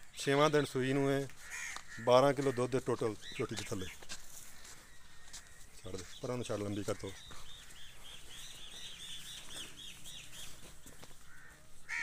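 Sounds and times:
bird chirping rapidly: 3.1 - 4.1, 6.0 - 10.6.

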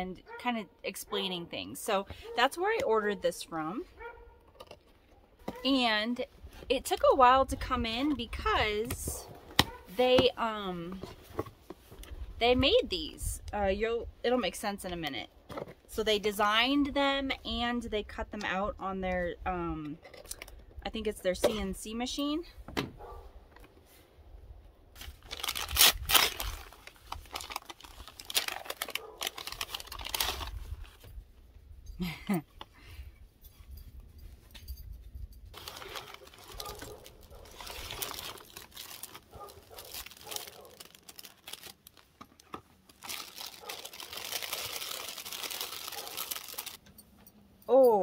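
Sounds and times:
packing paper crinkling: 25.0 - 31.0, 35.5 - 46.8.

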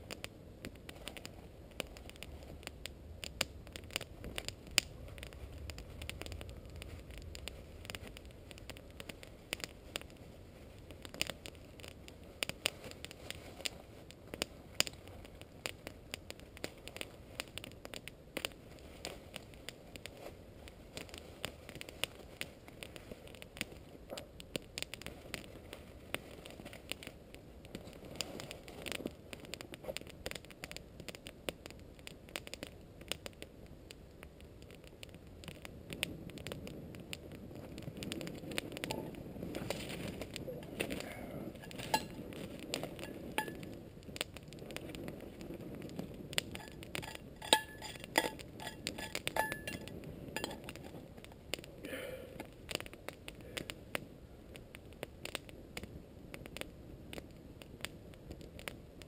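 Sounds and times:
rustling and handling noise: 0.0 - 2.9, 3.7 - 30.8, 37.3 - 51.8
campfire crackling and popping: 0.0 - 59.0
metal pot clinking: 41.6 - 42.1, 43.0 - 43.6, 46.5 - 50.9.

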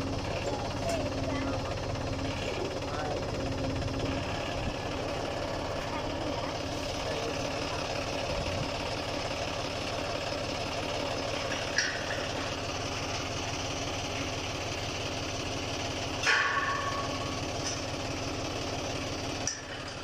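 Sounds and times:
tractor diesel engine idling: 0.0 - 20.0
loud metallic clank: 16.2 - 17.3.

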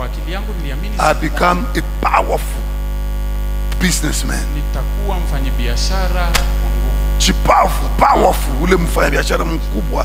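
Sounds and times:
electrical mains hum: 0.0 - 10.0
sharp click: 6.3 - 6.5.

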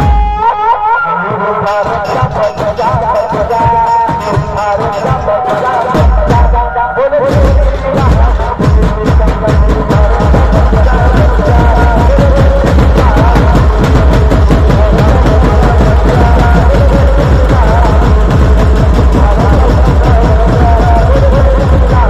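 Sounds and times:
fast bass drum beating: 1.6 - 22.0.

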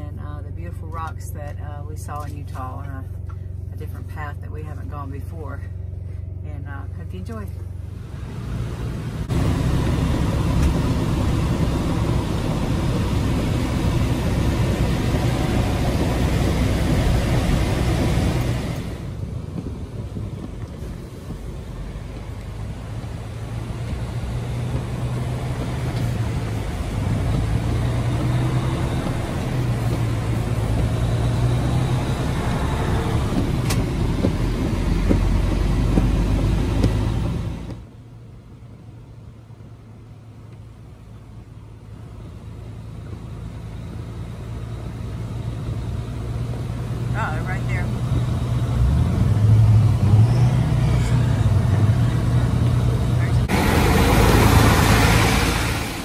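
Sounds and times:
road noise: 0.0 - 56.0
truck engine drone: 0.0 - 56.0
loud rushing noise: 48.8 - 56.0.

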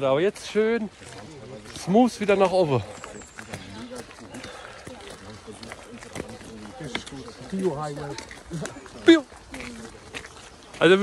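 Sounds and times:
footsteps on dirt path: 0.0 - 11.0
men talking quietly: 0.0 - 11.0.

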